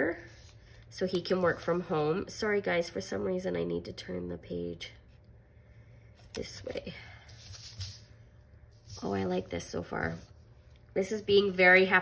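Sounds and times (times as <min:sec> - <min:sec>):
paper rustling and sliding: 0:00.2 - 0:00.7, 0:07.2 - 0:08.2.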